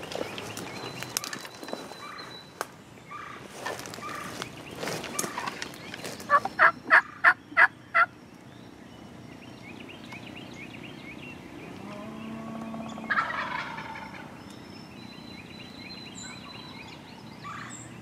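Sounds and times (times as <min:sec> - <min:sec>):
turkey gobbling: 0:06.3 - 0:08.1, 0:12.9 - 0:14.2.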